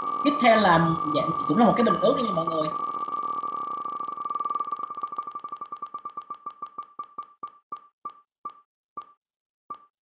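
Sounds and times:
spinning wheel beeping ticks: 0.0 - 9.9.

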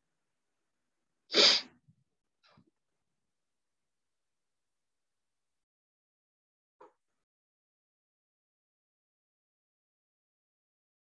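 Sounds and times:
person sneezing: 1.3 - 1.8.

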